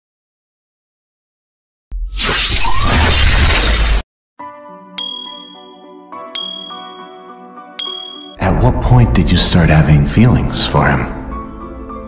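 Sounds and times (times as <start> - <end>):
notification bell ding: 5.0 - 7.2, 7.8 - 8.4.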